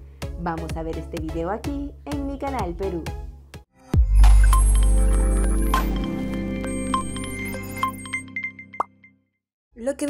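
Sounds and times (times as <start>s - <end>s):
sustained synth notes: 4.2s - 8.4s.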